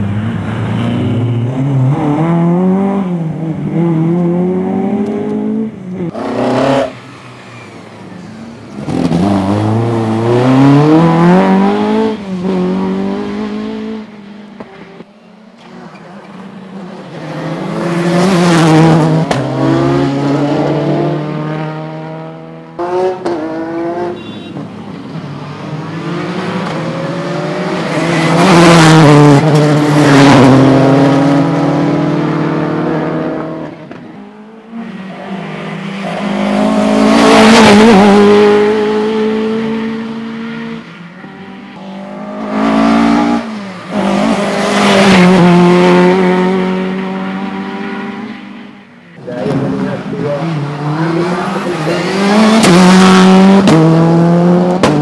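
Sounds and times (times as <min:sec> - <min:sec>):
rally car engines revving past: 0:00.0 - 0:55.0.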